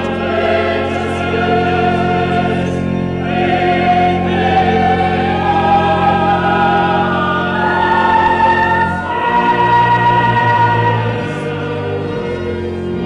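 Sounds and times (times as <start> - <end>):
choir singing long chords: 0.0 - 13.0.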